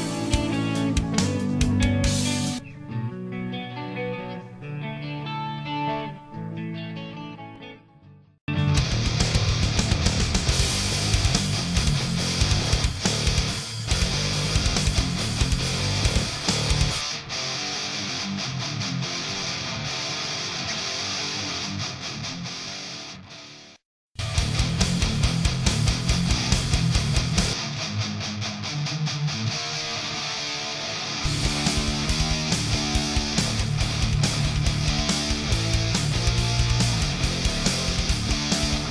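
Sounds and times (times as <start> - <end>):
drums: 0.0 - 2.7, 8.5 - 17.9, 24.2 - 38.9
bass: 0.0 - 3.6, 8.5 - 17.0, 24.2 - 27.6, 31.2 - 38.9
distorted electric guitar riffs: 0.0 - 38.9.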